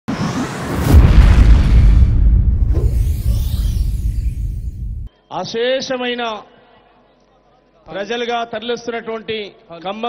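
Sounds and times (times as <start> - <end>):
deep boom: 0.6 - 5.1.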